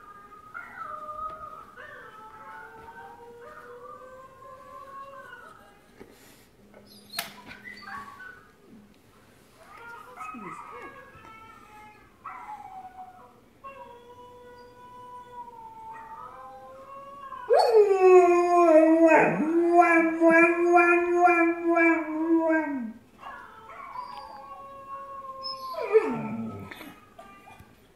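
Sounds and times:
dog howling and whining: 0:11.7 - 0:27.6.

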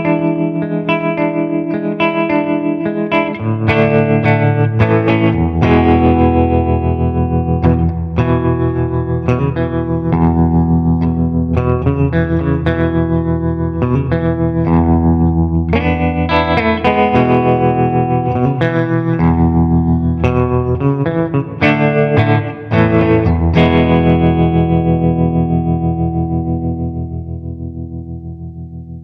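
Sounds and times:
electric guitar chords with tremolo: 0:00.0 - 0:29.0.

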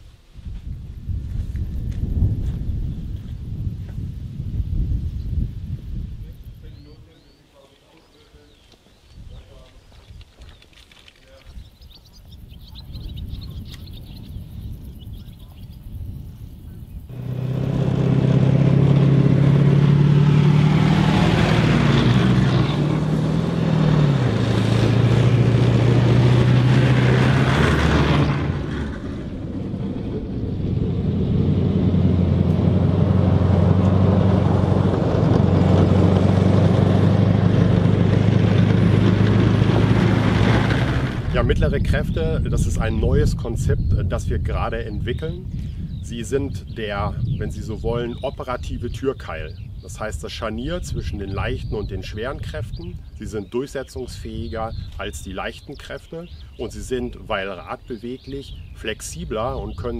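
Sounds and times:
tracked vehicle running gear rumble: 0:17.0 - 0:50.1
diesel engine running hard: 0:17.1 - 0:41.4.

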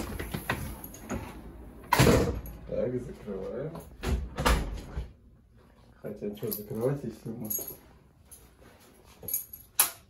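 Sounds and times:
wooden door closing and latching: 0:04.0 - 0:05.1.

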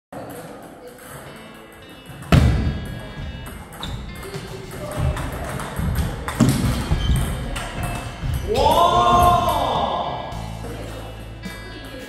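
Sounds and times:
soft background music: 0:00.2 - 0:12.0.

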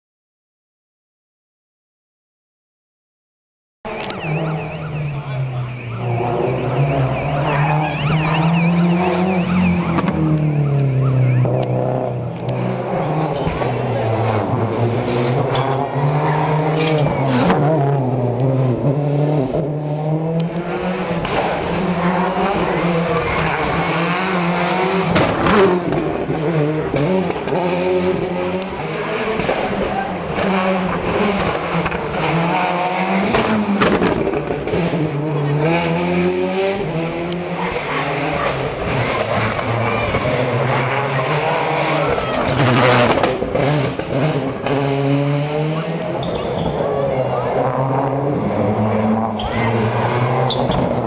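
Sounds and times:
car braking: 0:03.9 - 0:51.0
rally car accelerating: 0:03.9 - 0:51.0.

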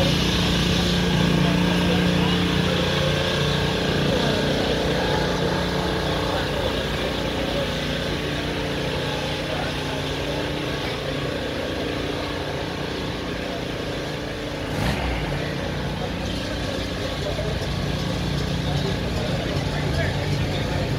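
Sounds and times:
car engines idling: 0:00.0 - 0:20.9
crowd chatter: 0:00.0 - 0:20.9.

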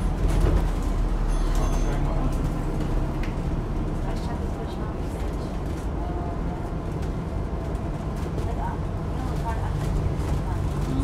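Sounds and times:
bus engine rumbling: 0:00.0 - 0:11.0.

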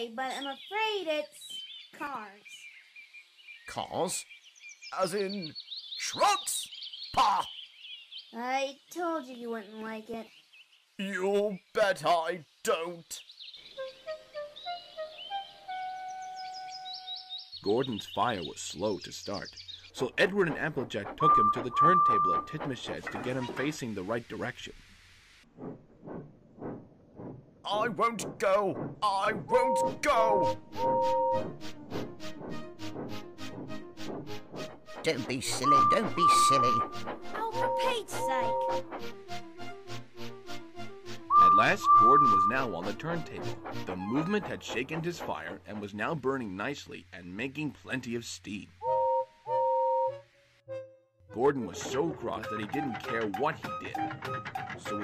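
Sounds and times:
steam locomotive chuffing: 0:20.0 - 0:24.3, 0:25.6 - 0:46.6, 0:51.6 - 0:55.0
steam locomotive whistle: 0:21.2 - 0:22.5, 0:35.6 - 0:38.8, 0:41.3 - 0:42.8, 0:48.8 - 0:50.3.

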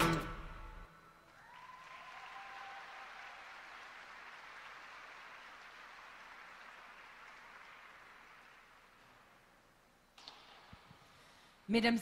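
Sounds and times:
high cheer: 0:01.2 - 0:06.2
spectator applause: 0:01.3 - 0:09.3.

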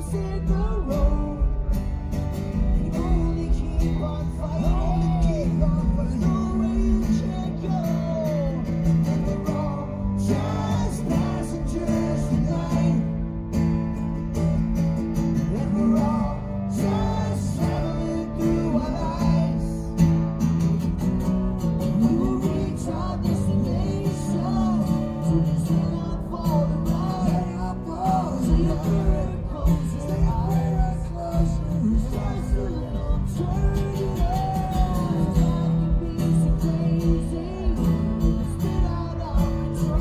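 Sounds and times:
man singing: 0:00.0 - 0:14.5, 0:15.1 - 0:20.6, 0:21.5 - 0:40.0
acoustic guitars strummed: 0:00.0 - 0:40.0.

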